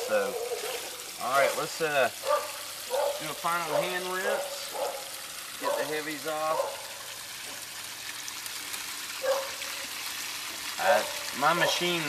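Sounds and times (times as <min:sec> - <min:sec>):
water running down sluice box: 0:00.0 - 0:12.0
water spraying: 0:00.0 - 0:12.0.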